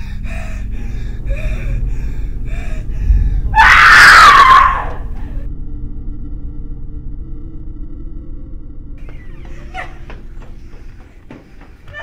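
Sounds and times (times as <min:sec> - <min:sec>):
woman screaming: 0:03.5 - 0:05.1.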